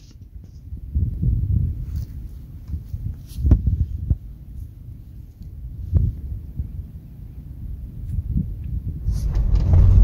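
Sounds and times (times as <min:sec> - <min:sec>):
wind on phone microphone: 0:00.0 - 0:10.0.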